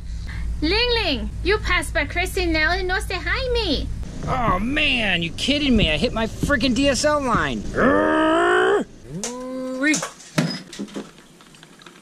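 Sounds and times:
man groaning: 7.7s - 9.9s.

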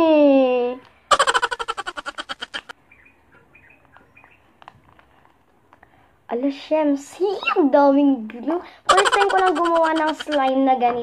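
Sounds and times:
boy giggling: 1.1s - 2.7s, 8.9s - 10.6s.

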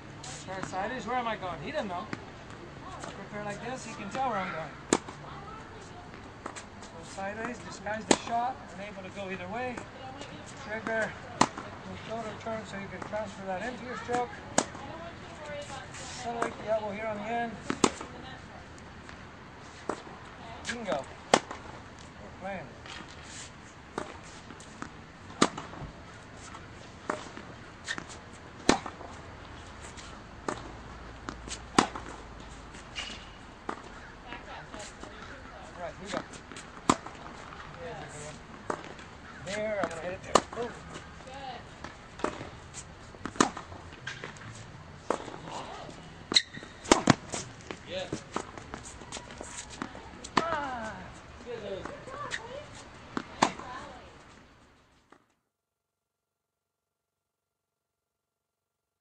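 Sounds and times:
tennis ball struck by rackets: 4.9s - 5.2s, 7.4s - 8.4s, 9.7s - 11.8s, 13.7s - 16.6s, 17.6s - 18.1s, 19.8s - 21.8s, 23.9s - 29.2s, 30.0s - 42.6s, 43.2s - 50.9s, 51.6s - 53.9s
shoes moving on court: 22.8s - 54.5s.

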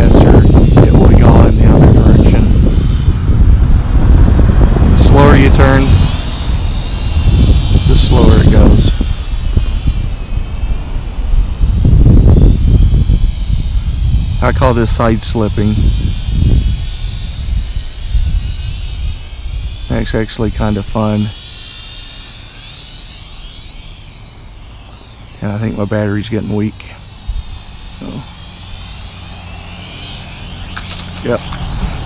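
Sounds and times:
heavy low rumble: 0.0s - 21.4s
quadcopter propellers whining: 0.0s - 32.0s.

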